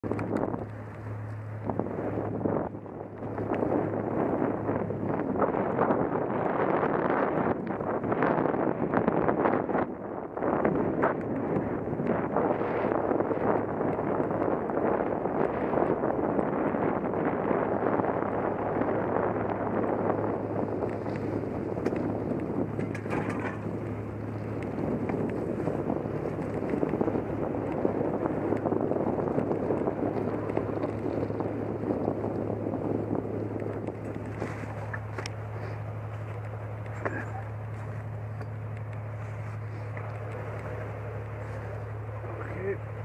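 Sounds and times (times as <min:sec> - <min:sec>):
bike rattling over bumps: 0:00.0 - 0:43.0
low hum: 0:00.0 - 0:43.0
wind rushing over microphone: 0:00.0 - 0:43.0
tyres rolling on dirt path: 0:20.6 - 0:42.6.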